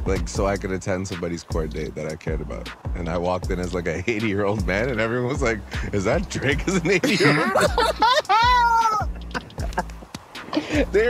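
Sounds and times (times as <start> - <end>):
quieter voices: 0.0 - 11.0
high-pitched vocal cry: 8.4 - 9.2.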